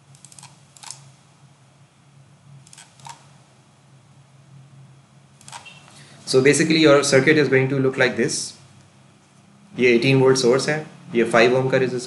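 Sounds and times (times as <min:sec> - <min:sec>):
computer mouse clicking: 0:00.1 - 0:01.1, 0:02.6 - 0:03.2.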